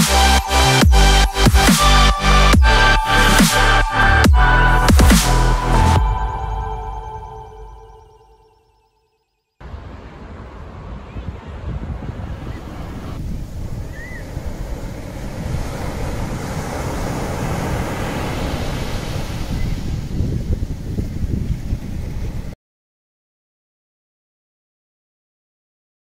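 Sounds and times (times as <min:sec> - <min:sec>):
ocean surf breaking: 0:09.6 - 0:20.4
wind buffeting microphone: 0:09.7 - 0:22.6.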